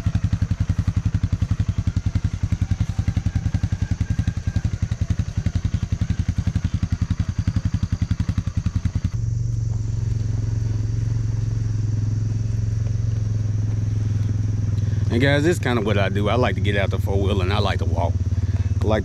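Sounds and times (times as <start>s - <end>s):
off-road vehicle engine chugging: 0.0s - 19.0s
steady low hum: 0.0s - 19.0s.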